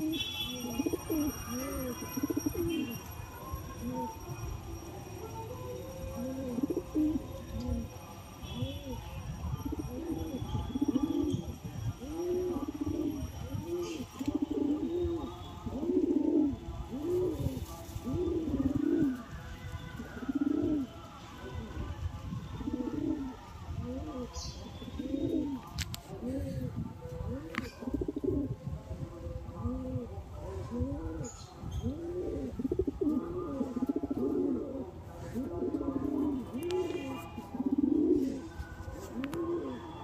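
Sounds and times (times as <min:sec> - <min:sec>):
pigeon cooing: 0:00.0 - 0:03.0, 0:05.3 - 0:21.9, 0:22.6 - 0:40.0.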